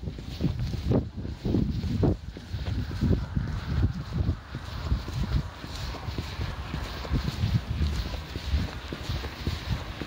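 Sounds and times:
footsteps on stone paving: 0.0s - 10.0s
wind on microphone: 0.0s - 10.0s.

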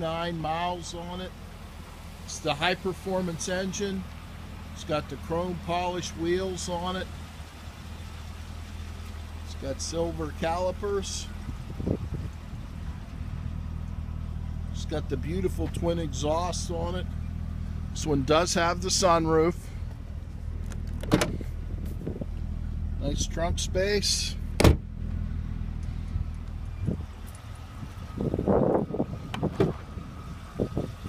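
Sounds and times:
car engine idling: 0.0s - 31.0s
steady low rumble: 0.0s - 31.0s
trunk latch click: 20.6s - 21.4s, 24.6s - 24.9s.

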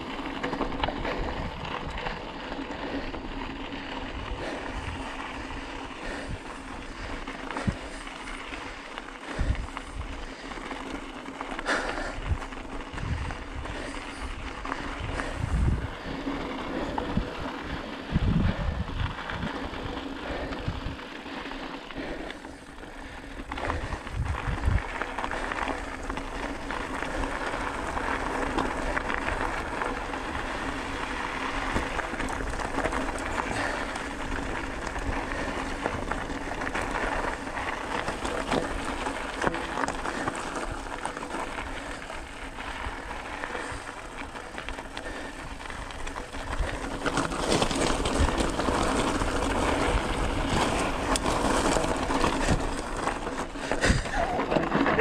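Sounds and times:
bike rattling over bumps: 0.0s - 55.0s
tyres crunching on gravel: 0.0s - 55.0s.

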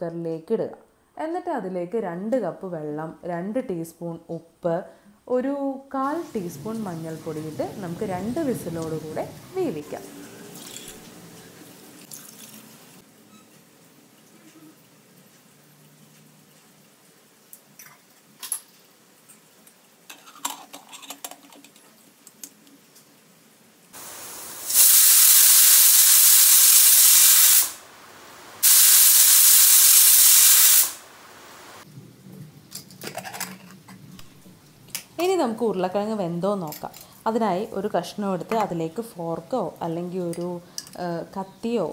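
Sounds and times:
pressure cooker whistling: 24.0s - 27.8s, 28.6s - 31.0s.

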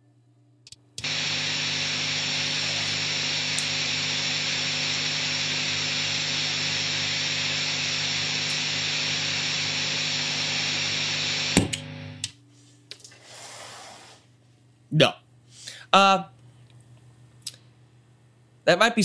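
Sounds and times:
guitar rig hum and hiss: 1.0s - 14.3s
footswitch click: 11.6s - 12.3s.

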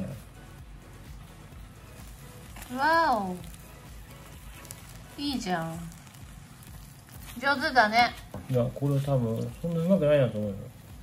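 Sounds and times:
batter sizzling faintly on a griddle: 0.0s - 11.0s.

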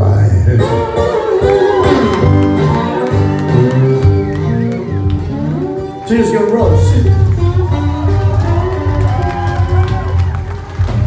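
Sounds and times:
acoustic guitar playing slow blues: 0.0s - 6.1s, 7.1s - 8.8s.

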